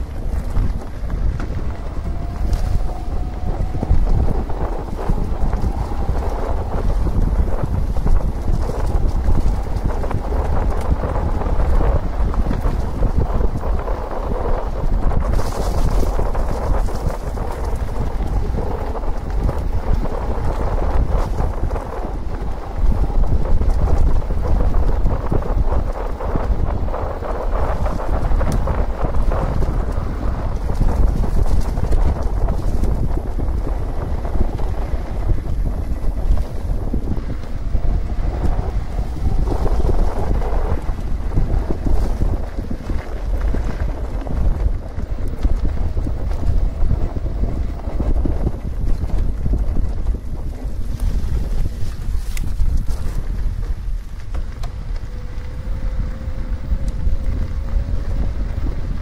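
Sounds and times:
tyres rumbling on gravel: 0.0 - 59.0
wind buffeting microphone: 0.0 - 59.0.

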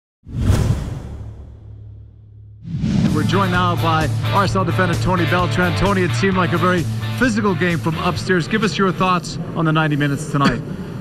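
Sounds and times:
whoosh sound effect: 0.2 - 3.6.

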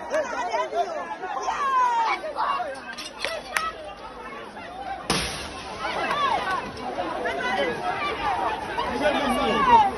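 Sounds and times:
crowd talking: 0.0 - 9.9.

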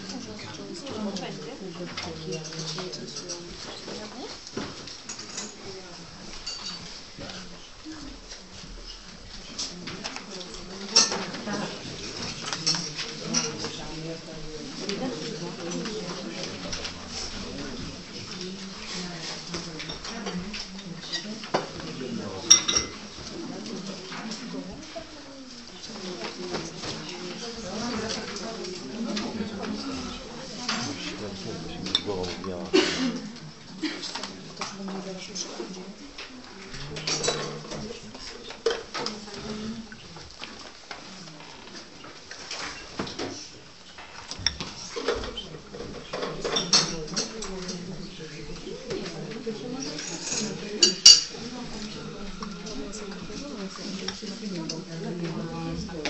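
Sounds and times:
low room chatter: 0.0 - 56.0.

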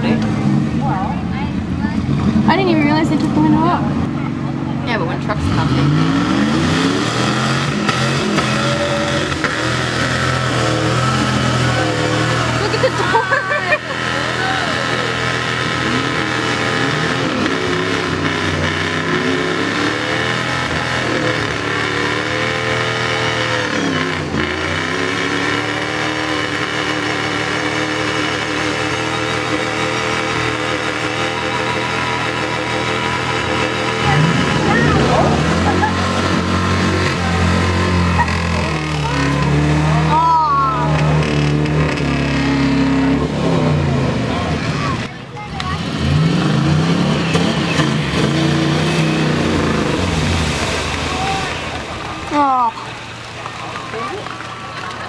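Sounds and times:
truck engines revving: 0.0 - 55.0.

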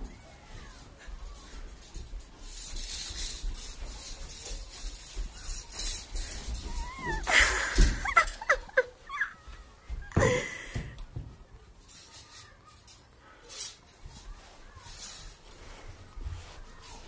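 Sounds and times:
high-pitched vocal squeals: 6.6 - 7.5.

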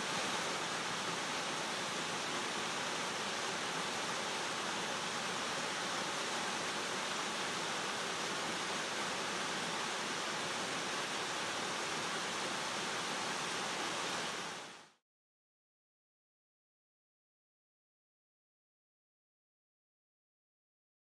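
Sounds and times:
waterfall over rocks: 0.0 - 15.0.

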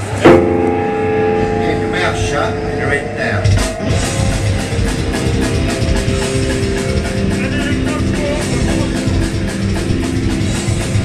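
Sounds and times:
distorted guitar and bass chord: 0.0 - 11.0.

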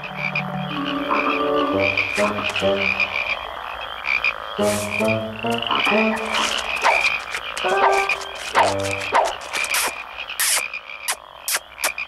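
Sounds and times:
frogs croaking: 0.0 - 12.0.

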